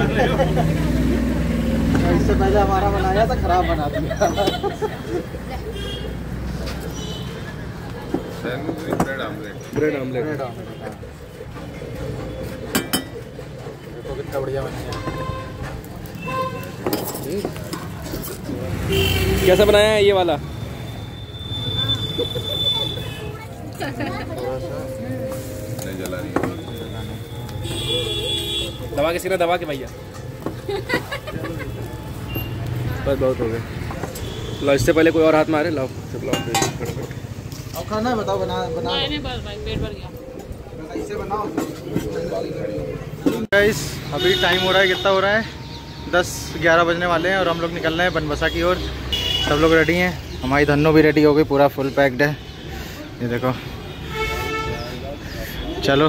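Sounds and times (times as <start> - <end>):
street noise: 0.0 - 56.0
metal utensils clinking: 16.8 - 18.4, 36.2 - 37.2.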